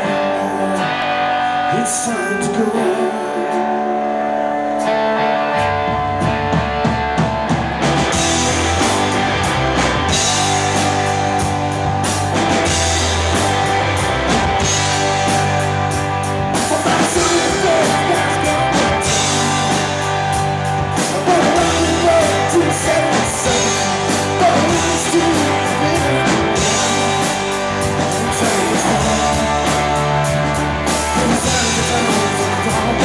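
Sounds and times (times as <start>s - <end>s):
bass guitar: 0.0s - 33.0s
electric guitars: 0.0s - 33.0s
drum kit: 3.4s - 33.0s.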